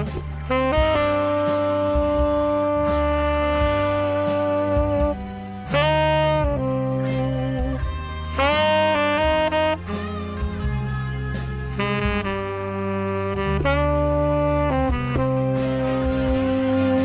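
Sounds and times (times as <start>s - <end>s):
karaoke backing track: 0.0s - 17.0s
tenor saxophone melody: 0.0s - 17.0s.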